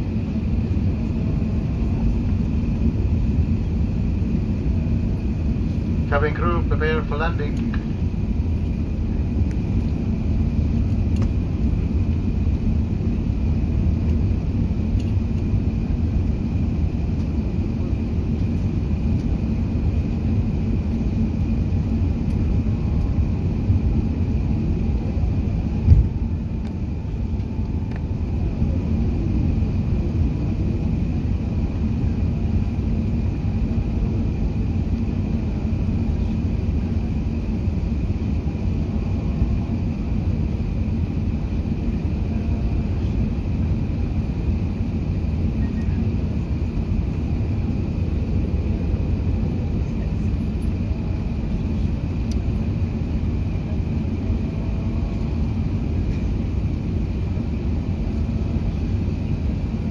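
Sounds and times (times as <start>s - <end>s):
aircraft cabin engine rumble: 0.0s - 59.9s
short thump: 25.9s - 26.1s.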